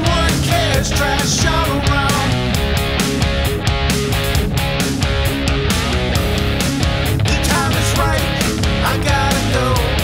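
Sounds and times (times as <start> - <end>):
bass and drums: 0.0 - 10.0
electric guitar strumming chords: 0.0 - 10.0.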